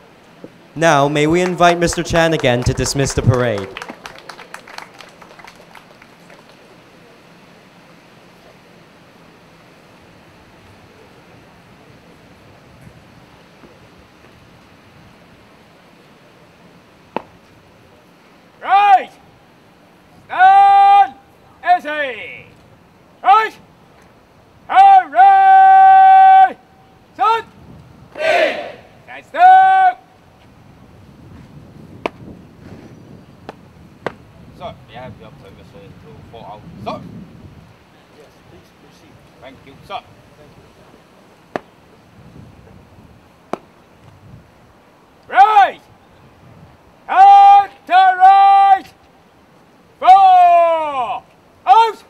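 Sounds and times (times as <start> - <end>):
man shouting commands: 0.8 - 3.8, 18.6 - 19.2, 20.2 - 22.5, 23.2 - 23.6, 24.7 - 27.5, 28.2 - 30.1, 36.3 - 37.1, 45.3 - 45.9, 47.1 - 49.0, 50.0 - 52.0
many voices shouting together: 28.2 - 30.0.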